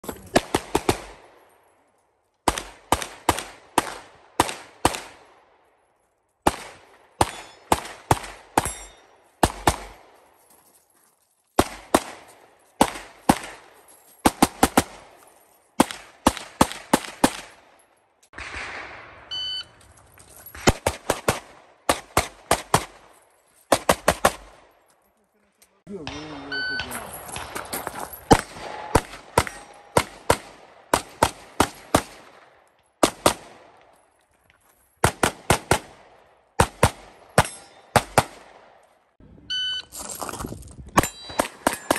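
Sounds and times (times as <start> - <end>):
pistol shots cracking: 0.2 - 1.4, 2.4 - 5.5, 6.4 - 10.2, 11.6 - 15.2, 15.8 - 19.2, 20.6 - 23.1, 23.7 - 24.7, 26.1 - 33.9, 35.0 - 38.8, 41.0 - 41.9.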